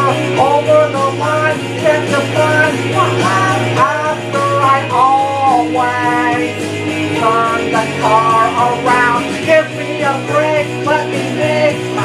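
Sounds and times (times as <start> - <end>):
man singing: 0.0 - 12.0
rock karaoke backing track: 0.0 - 12.0.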